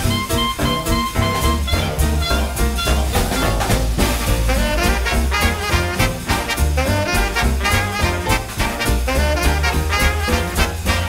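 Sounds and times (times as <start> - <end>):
swing jazz with brass: 0.0 - 11.0.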